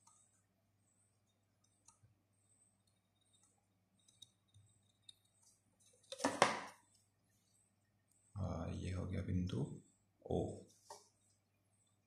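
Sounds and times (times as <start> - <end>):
marker pen and ruler clicking on paper: 1.2 - 2.2.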